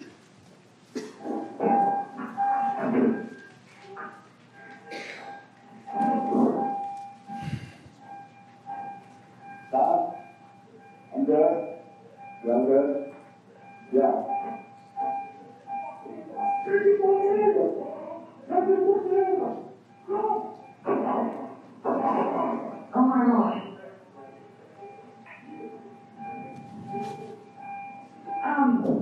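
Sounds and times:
muffled phone-quality voices: 1.0 - 29.0
faint steady tone: 4.6 - 29.0.

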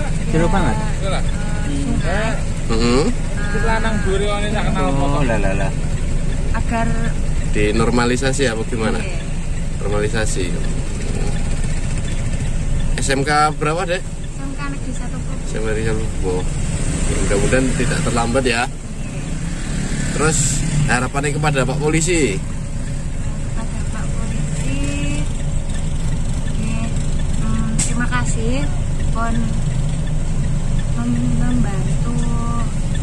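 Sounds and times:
car engine running: 0.0 - 33.0.

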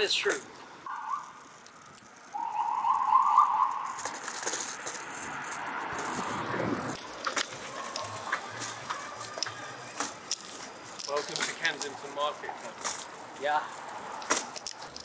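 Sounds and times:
vehicle passing: 0.8 - 15.0
trilling rattling tone: 0.9 - 9.7.

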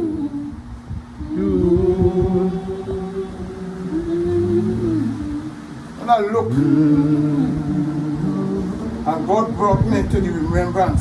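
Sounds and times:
voices humming drawn-out notes: 0.0 - 11.0.

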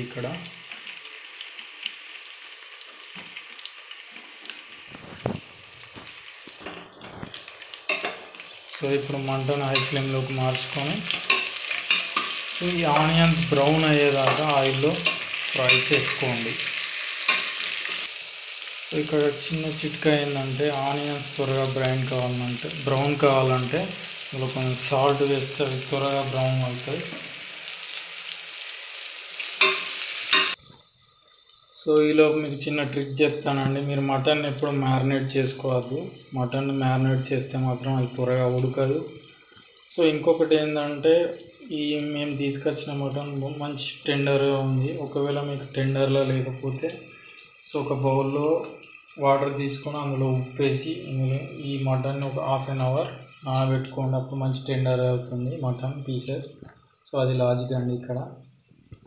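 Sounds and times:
onions sizzling in hot oil: 0.0 - 35.3, 51.8 - 59.0.

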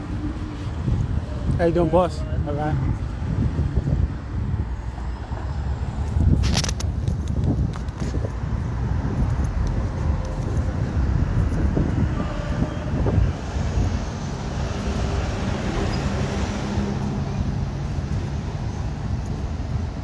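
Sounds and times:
street traffic rumble: 0.0 - 20.0.

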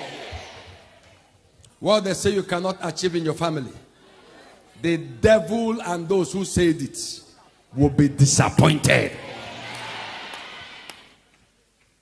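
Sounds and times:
large hall ambience: 0.0 - 12.0.

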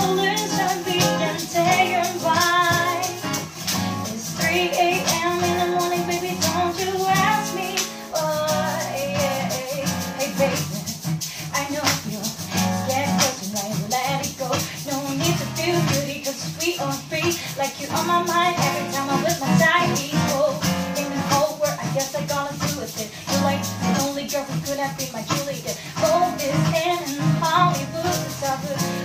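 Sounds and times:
acoustic guitar strummed: 0.0 - 29.0
woman singing ballad: 0.0 - 29.0.

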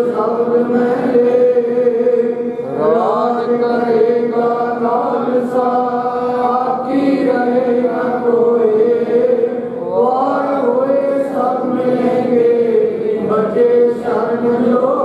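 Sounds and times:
man chanting into a microphone: 0.0 - 15.0.

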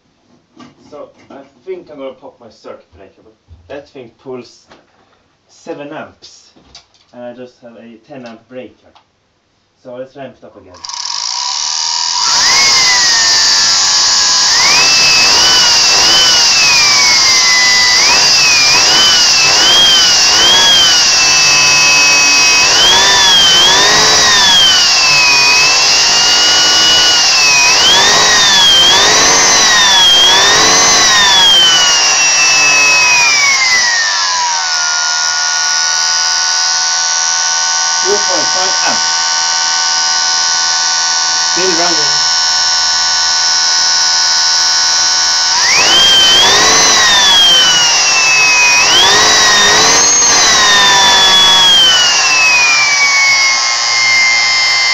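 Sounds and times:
vacuum motor whine: 10.8 - 54.9.

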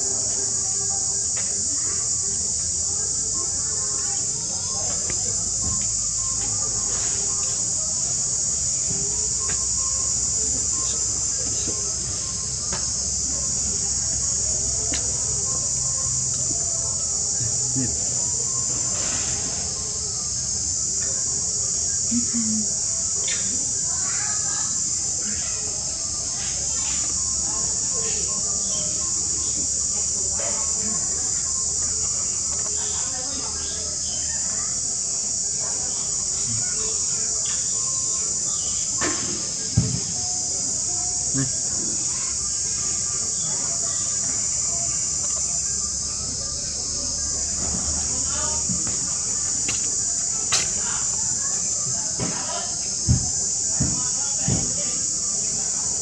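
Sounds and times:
high-pitched insect drone: 0.0 - 56.0.

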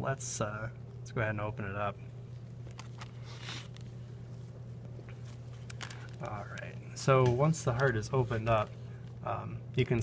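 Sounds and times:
steady low hum: 0.0 - 10.0
soft handling clicks and rustles: 2.3 - 9.2.

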